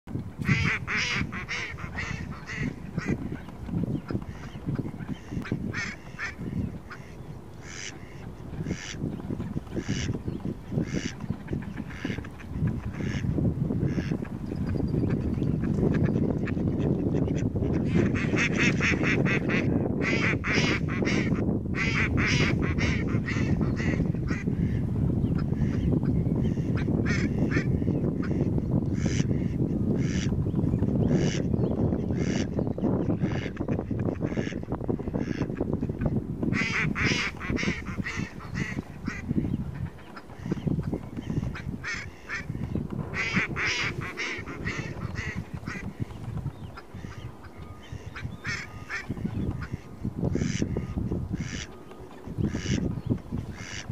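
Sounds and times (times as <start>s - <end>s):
ducks quacking: 0.4s - 9.1s, 9.8s - 24.8s, 25.4s - 30.3s, 31.0s - 53.9s
steady low rumble: 33.0s - 51.7s.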